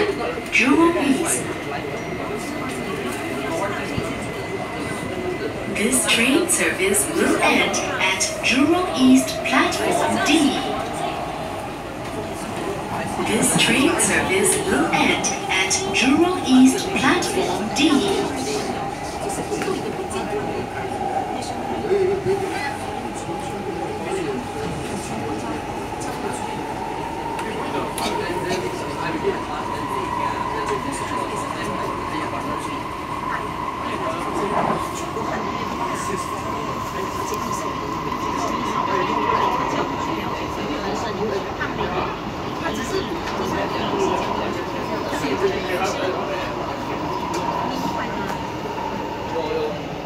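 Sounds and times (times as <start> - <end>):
train cabin rumble and whine: 0.0 - 50.0.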